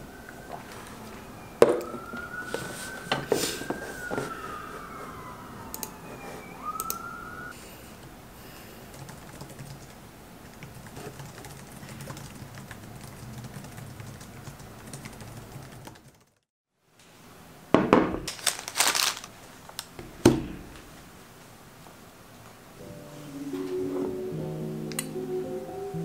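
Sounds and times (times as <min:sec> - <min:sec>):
emergency vehicle siren wailing: 0:00.0 - 0:07.6
laptop keyboard typing: 0:08.8 - 0:16.4.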